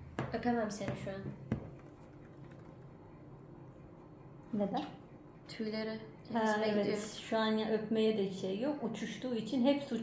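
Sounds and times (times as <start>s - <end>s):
tapping on a hard tabletop: 0.2s - 2.0s.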